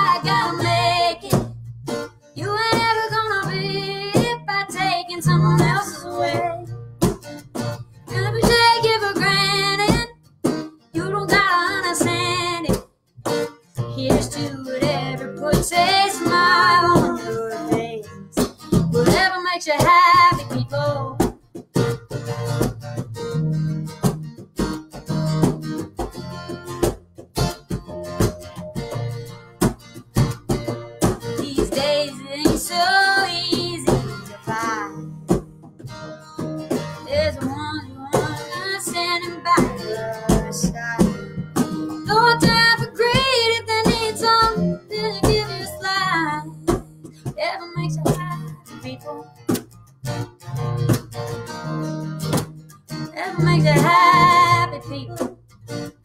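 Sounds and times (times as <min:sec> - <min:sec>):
woman singing: 0:00.0 - 0:01.5, 0:02.4 - 0:06.7, 0:08.1 - 0:10.1, 0:11.0 - 0:12.8, 0:13.9 - 0:21.2, 0:31.4 - 0:35.0, 0:37.0 - 0:41.2, 0:42.0 - 0:49.3, 0:53.1 - 0:55.3
electric bass guitar: 0:00.0 - 0:19.2, 0:20.0 - 0:56.0
acoustic guitar strumming: 0:00.0 - 0:56.0.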